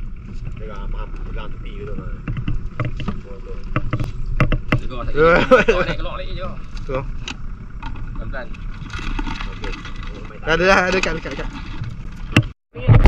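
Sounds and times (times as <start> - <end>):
low steady rumble: 0.0 - 13.0.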